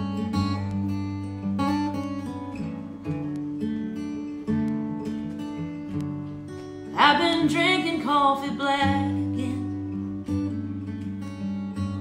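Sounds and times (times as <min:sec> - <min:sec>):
acoustic guitar country song: 0:00.0 - 0:12.0
woman singing: 0:06.9 - 0:09.8.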